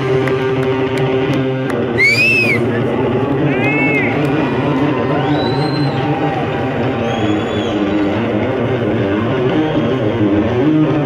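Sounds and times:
audience shouting and whistling: 0:01.9 - 0:02.7, 0:03.4 - 0:08.5.

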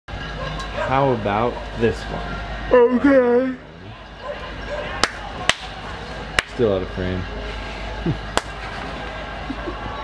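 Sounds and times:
hand claps: 0:05.0 - 0:05.7, 0:06.4 - 0:06.6, 0:08.3 - 0:08.6.

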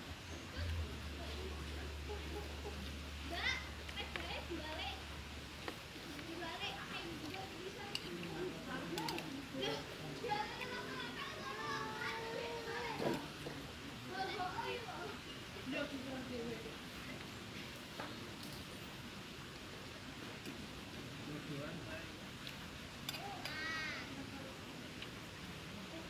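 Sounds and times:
children's voices: 0:00.5 - 0:05.1, 0:06.1 - 0:15.8, 0:23.1 - 0:24.4
child's long call: 0:10.6 - 0:13.2, 0:23.1 - 0:24.3.

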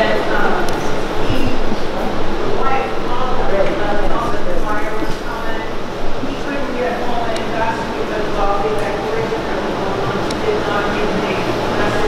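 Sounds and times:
many people praying aloud: 0:00.0 - 0:12.0.

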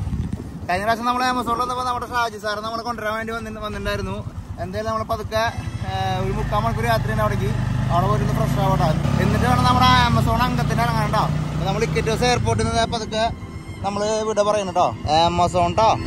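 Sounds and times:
man talking: 0:00.7 - 0:16.0
motorcycle engine droning: 0:01.6 - 0:16.0.

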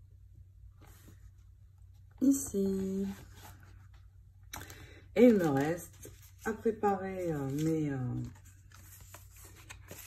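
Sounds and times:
person speaking: 0:02.2 - 0:03.5, 0:05.2 - 0:08.5
paper rustling: 0:02.4 - 0:10.0.

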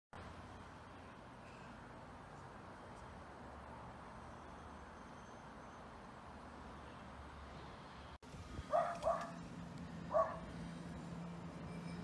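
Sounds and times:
dog barking: 0:08.7 - 0:09.4, 0:10.1 - 0:10.5.

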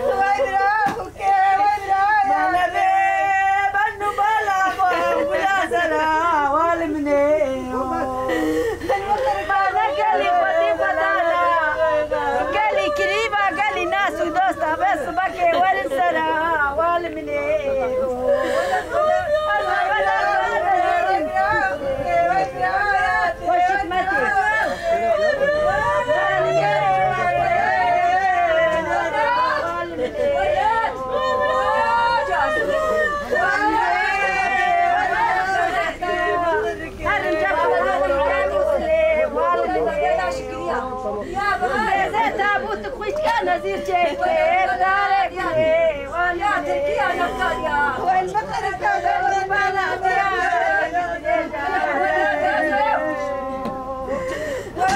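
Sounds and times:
women wailing in mourning: 0:00.0 - 0:54.9.

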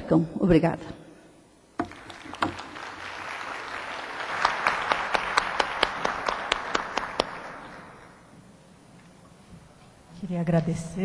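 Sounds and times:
audience applauding: 0:01.9 - 0:08.2.

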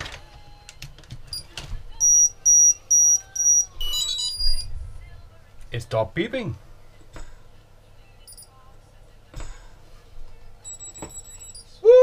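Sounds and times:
high electronic beeps: 0:02.0 - 0:04.7, 0:10.6 - 0:11.8.

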